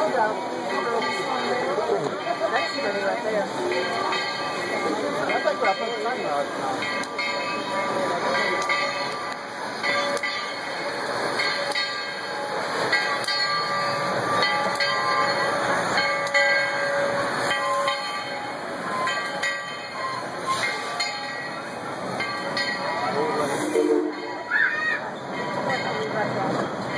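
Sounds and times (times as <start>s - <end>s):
steam train running past: 0.0s - 26.9s.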